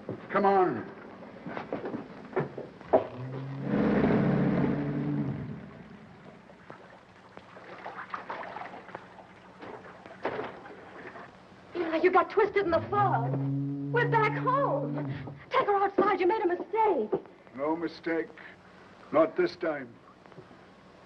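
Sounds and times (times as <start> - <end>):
low horn: 2.9 - 6.0, 12.7 - 15.4.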